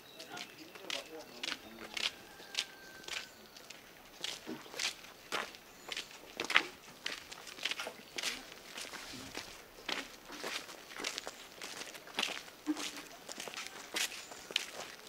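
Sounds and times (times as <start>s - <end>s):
footsteps on wet gritty road: 0.2s - 15.0s.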